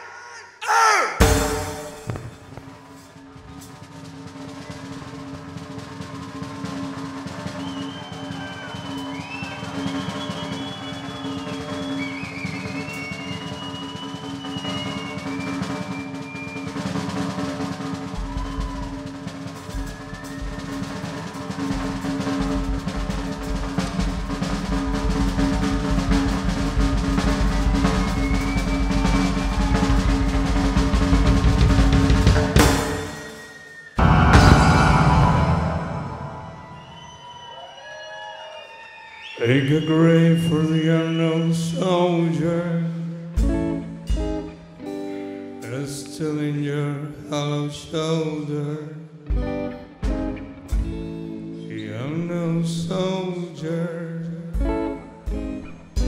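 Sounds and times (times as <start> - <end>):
snare drum roll: 1.2 - 37.3
deep bass: 34.0 - 37.0
keyboard drone: 34.0 - 37.0
high gliding notes: 34.0 - 37.4.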